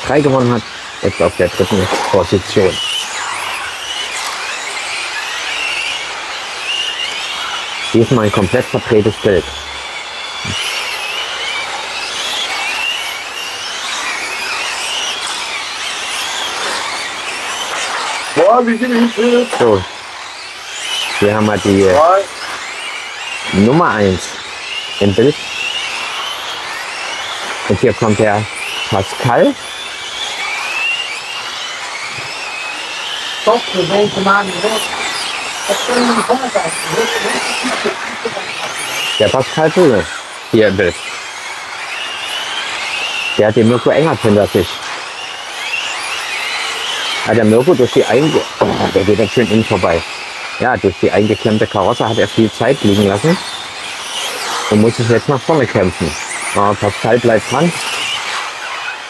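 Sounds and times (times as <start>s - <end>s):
electric motors whining: 0.0s - 59.0s
steady rushing hiss: 0.0s - 59.0s.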